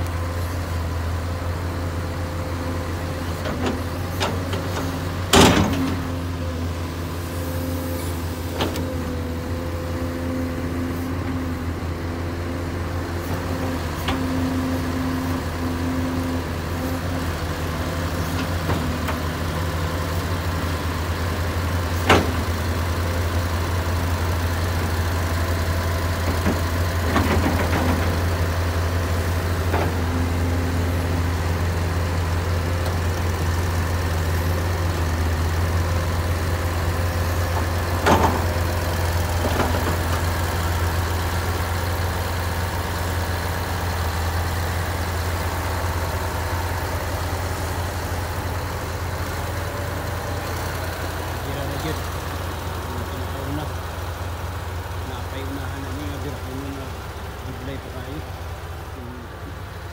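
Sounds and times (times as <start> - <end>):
diesel engines idling: 0.0 - 59.9.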